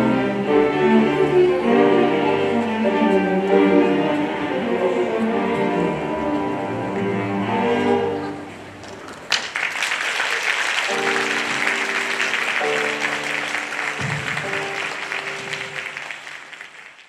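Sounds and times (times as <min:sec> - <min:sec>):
audience applauding: 0:08.8 - 0:17.0.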